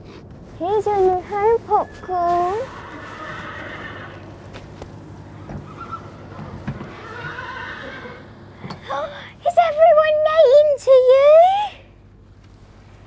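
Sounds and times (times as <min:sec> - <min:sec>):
horses whinnying: 0:02.6 - 0:04.3, 0:05.5 - 0:08.5.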